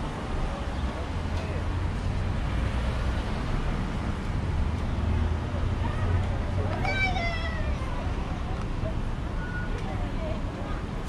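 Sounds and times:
low street and wind rumble: 0.0s - 11.0s.

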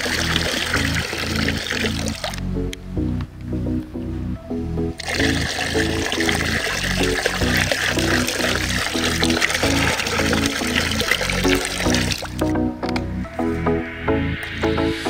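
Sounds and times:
soda pouring and fizzing: 0.0s - 2.4s, 5.0s - 12.5s
background music with beat: 2.3s - 15.0s.

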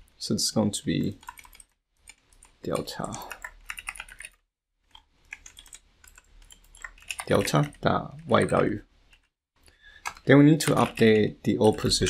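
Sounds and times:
keyboard typing: 1.2s - 9.3s, 9.9s - 12.0s.

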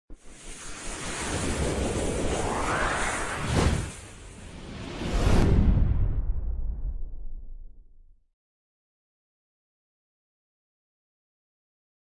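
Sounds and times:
whoosh rush of noise: 0.1s - 7.6s.

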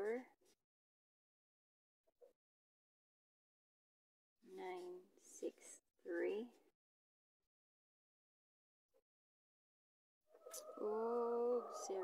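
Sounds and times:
woman speaking softly: 0.0s - 0.4s, 4.5s - 6.7s, 10.6s - 12.0s.

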